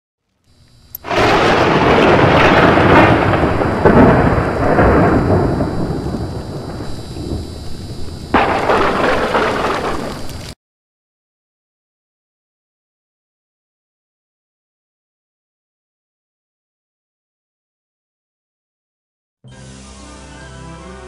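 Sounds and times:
loud rumbling crash: 1.1 - 10.6.

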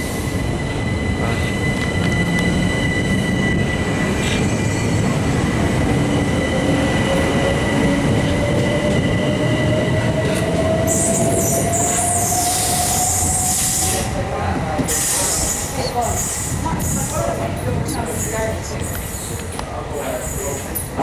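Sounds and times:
train whine rising in pitch: 0.0 - 14.5
train wheels rumbling on rails: 0.0 - 21.0.

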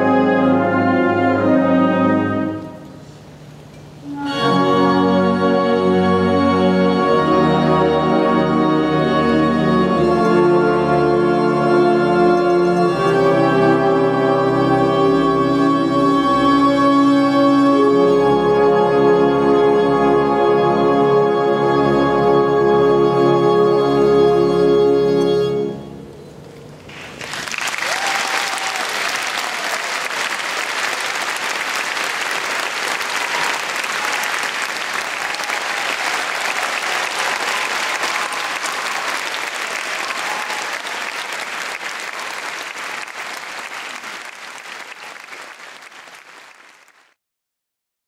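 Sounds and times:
music chord: 4.0 - 26.3
audience applauding: 26.9 - 47.2.

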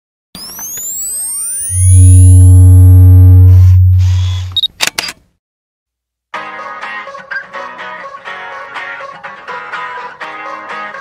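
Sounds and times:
deep steady bass tone: 1.7 - 4.6
camera shutter clicks: 4.5 - 5.2.

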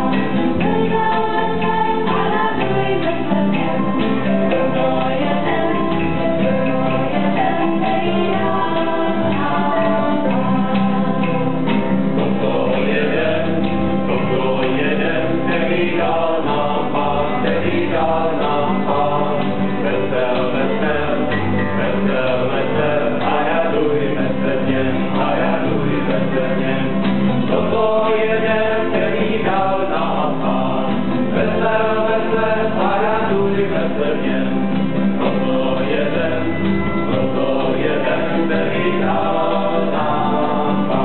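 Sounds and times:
church choir singing: 0.0 - 41.0
guitar accompaniment: 0.0 - 41.0.

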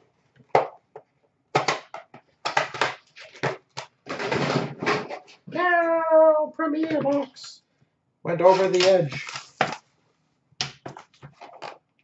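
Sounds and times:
man making wordless vocal sounds: 5.5 - 7.6
man's high-pitched vocalisation: 5.5 - 7.6.

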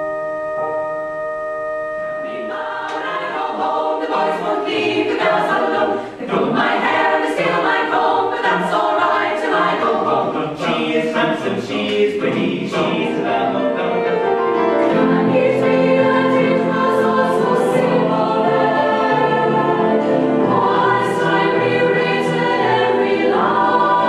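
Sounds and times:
held chord: 0.0 - 5.8, 13.0 - 24.0
mixed choir singing a cappella: 2.2 - 24.0.

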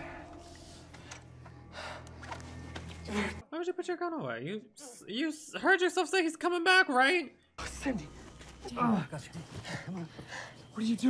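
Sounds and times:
low steady hum: 0.0 - 3.4.

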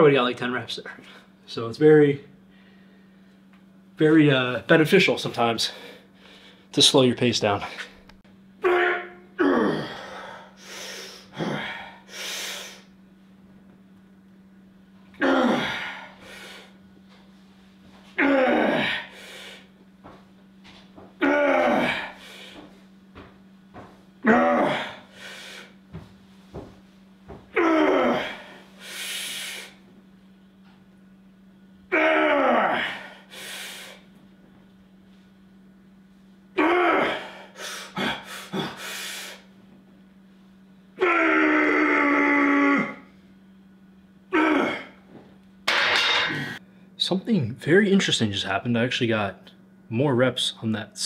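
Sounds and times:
man grunting and exhaling: 8.6 - 10.6, 11.2 - 12.1, 15.2 - 16.7, 18.2 - 19.7, 21.2 - 22.6, 24.2 - 25.8, 27.6 - 28.6, 31.9 - 34.0, 36.6 - 39.1, 44.3 - 45.0, 46.1 - 46.6.

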